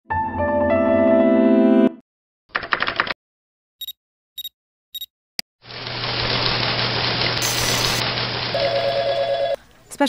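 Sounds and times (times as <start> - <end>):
telephone ringing: 8.5 - 9.6.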